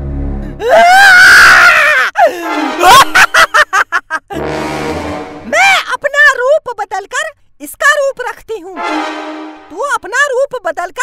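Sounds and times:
low droning music chord: 0.0 - 0.6, 4.4 - 5.5, 8.8 - 9.8.

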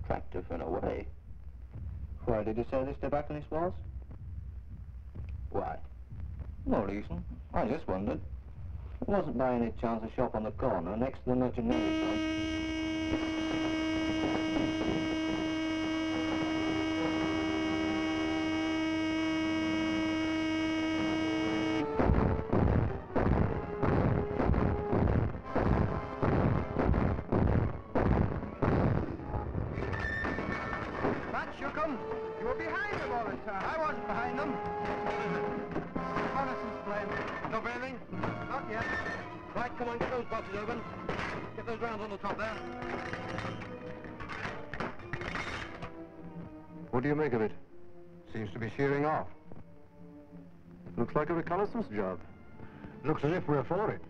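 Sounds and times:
dramatic orchestral film music: 5.2 - 54.0
ship's alarm horn: 11.7 - 27.8, 30.3 - 37.5.

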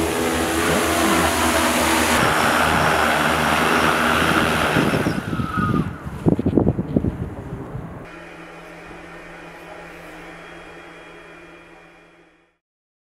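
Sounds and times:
drone propellers humming: 0.0 - 6.1, 7.9 - 12.6.

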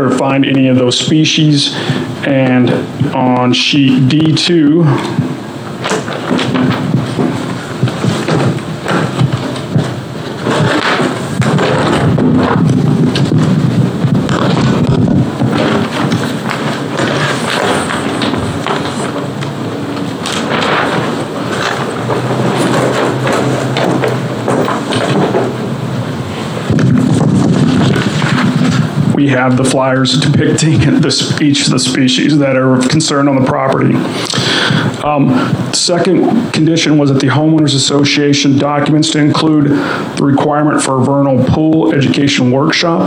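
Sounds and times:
microphone handling noise: 0.0 - 32.0, 32.8 - 36.9
paper sheets rustling: 3.2 - 32.2
thumps: 5.0 - 29.2.

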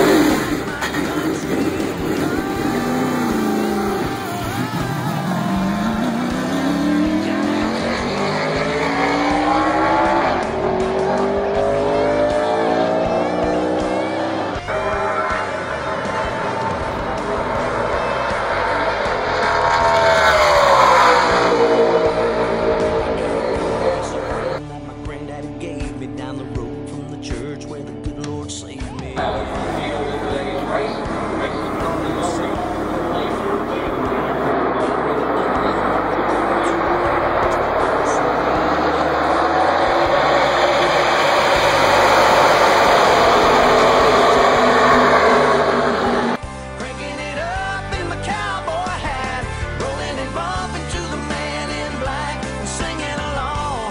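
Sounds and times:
race car passing at speed: 0.0 - 24.6, 29.2 - 46.4.

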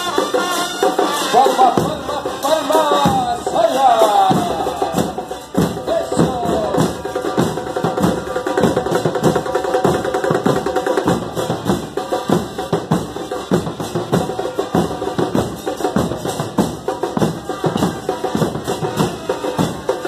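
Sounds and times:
bass drums playing a rhythm: 0.0 - 20.0.

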